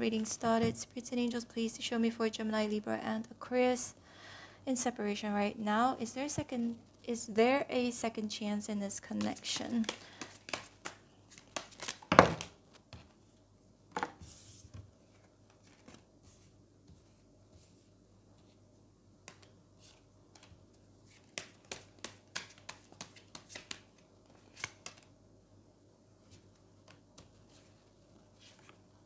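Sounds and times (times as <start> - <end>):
cards tapping and flicking: 9.1 - 13.0, 19.2 - 19.6, 20.3 - 25.1
cards slapped on wooden table: 9.8 - 12.6
cards clicking: 21.2 - 25.1.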